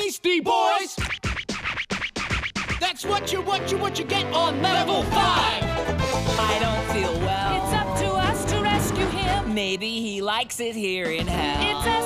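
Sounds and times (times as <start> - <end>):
dj scratching: 0.9 - 3.0.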